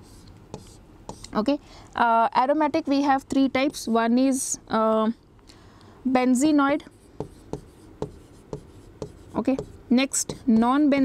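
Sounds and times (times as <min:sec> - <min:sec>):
pen writing on a board: 0:00.0 - 0:01.4, 0:07.0 - 0:10.8.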